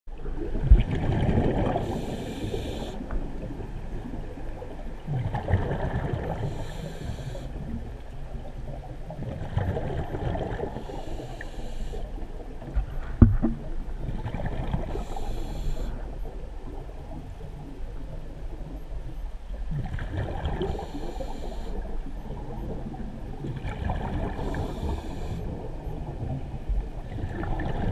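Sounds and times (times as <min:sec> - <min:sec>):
exhaled bubbles rumbling underwater: 0:00.1 - 0:27.9
hissing inhale through regulator: 0:01.6 - 0:03.1, 0:06.2 - 0:07.7, 0:10.7 - 0:12.2, 0:14.9 - 0:16.1, 0:20.6 - 0:21.9, 0:24.2 - 0:25.6.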